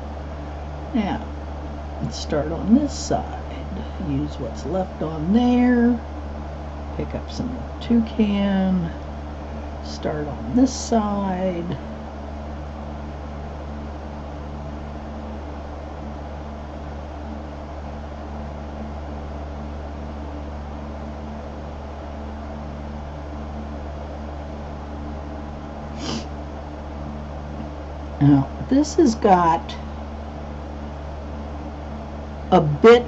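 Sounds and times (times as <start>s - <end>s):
low electrical hum: 0.0s - 33.0s
brief breathy hiss: 25.9s - 26.3s.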